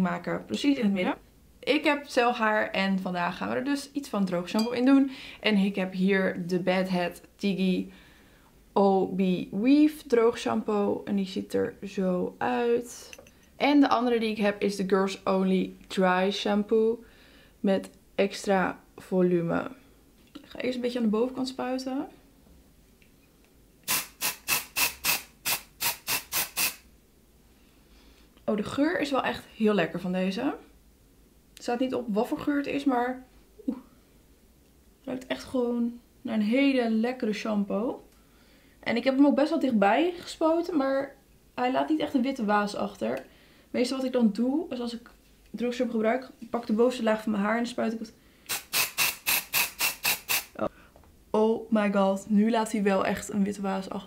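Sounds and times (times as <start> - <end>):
aerosol spray hissing bursts: 23.9 - 26.9, 48.5 - 50.6.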